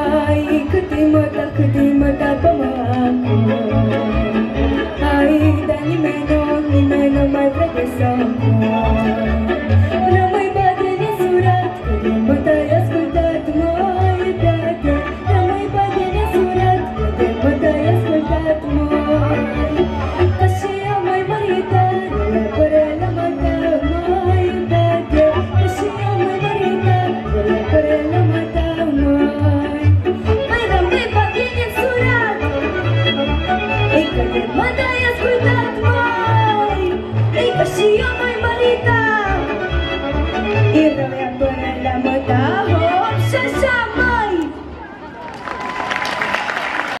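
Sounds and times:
woman singing through microphone: 0.0 - 32.5, 33.9 - 39.5, 40.7 - 44.6
amplified backing music: 0.0 - 44.8.

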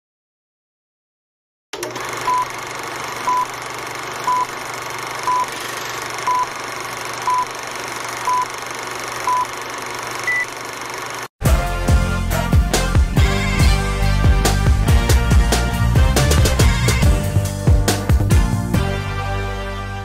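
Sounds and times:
countdown beeps: 5.3 - 5.5, 7.3 - 7.5
music with a beat: 11.4 - 19.1.

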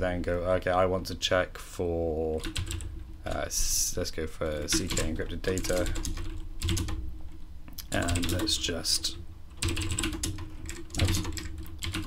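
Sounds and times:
computer keyboard typing: 2.4 - 3.4, 4.5 - 7.0, 7.9 - 8.6, 9.5 - 12.0.

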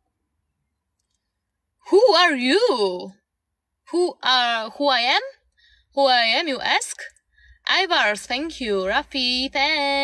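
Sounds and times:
woman speaking: 1.8 - 3.2, 3.9 - 10.0.

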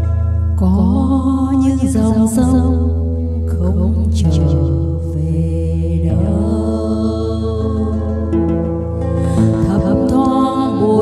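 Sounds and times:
guitar: 0.0 - 11.0
woman singing ballad: 0.5 - 11.0.

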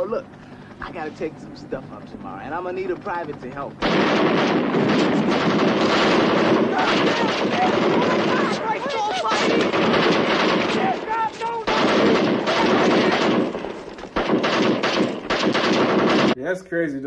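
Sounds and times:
machine-gun fire: 2.4 - 16.4
men yelling: 5.9 - 13.8.

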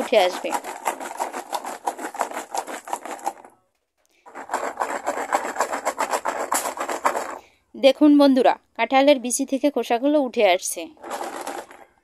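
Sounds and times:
seeds rattling in shaken bottle: 0.0 - 3.5, 4.2 - 7.5, 10.9 - 12.0.

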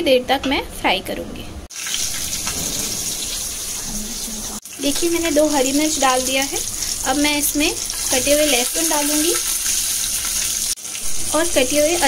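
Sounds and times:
spices sizzling in hot oil: 1.7 - 12.0.

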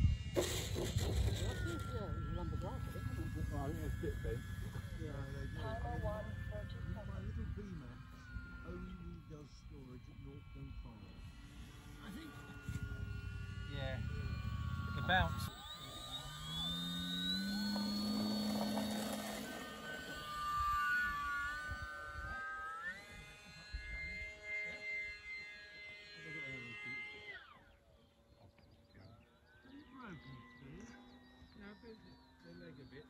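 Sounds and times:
model aeroplane motor and propeller: 0.0 - 33.0.

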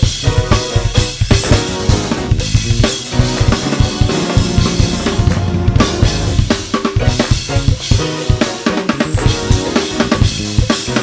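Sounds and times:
backing track instruments: 0.0 - 11.0
drum kit playing: 0.0 - 11.0.

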